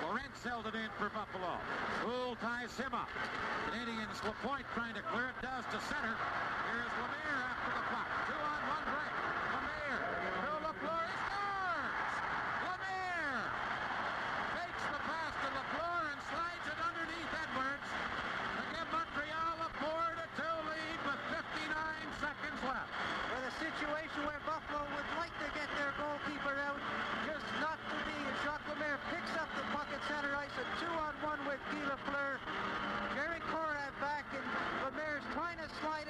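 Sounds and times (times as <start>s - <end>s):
crowd cheering: 0.0s - 36.0s
pitched calls from crowd: 4.8s - 36.0s.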